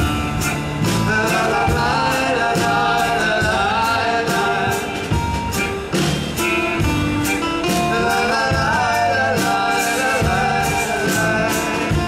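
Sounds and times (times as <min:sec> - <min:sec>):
accordion: 0:00.0 - 0:12.0
acoustic guitars: 0:00.0 - 0:12.0
drum and cymbal hits: 0:00.0 - 0:12.0
man singing: 0:00.8 - 0:05.2, 0:07.6 - 0:12.0.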